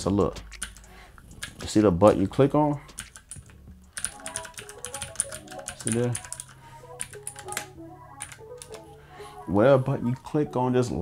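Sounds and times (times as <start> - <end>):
background music: 0.0 - 11.0
mechanical keyboard clicking: 0.3 - 8.8.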